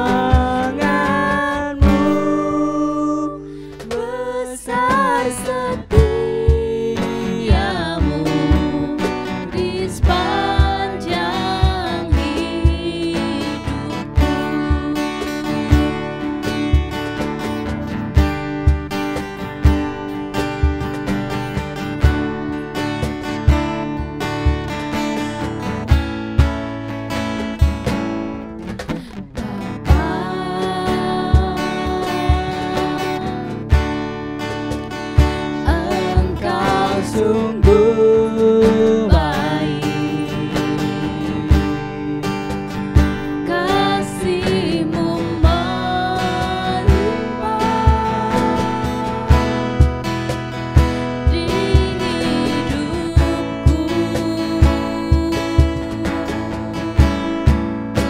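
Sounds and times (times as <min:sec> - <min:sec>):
man singing: 0:00.0 - 0:12.4, 0:35.7 - 0:42.2
woman singing: 0:00.0 - 0:16.8, 0:28.9 - 0:34.0, 0:35.2 - 0:50.2, 0:51.2 - 0:57.7
strummed acoustic guitar: 0:00.0 - 0:58.0.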